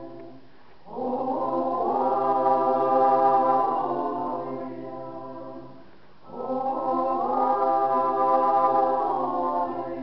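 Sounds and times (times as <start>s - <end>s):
small mixed choir singing: 0.0s - 10.0s.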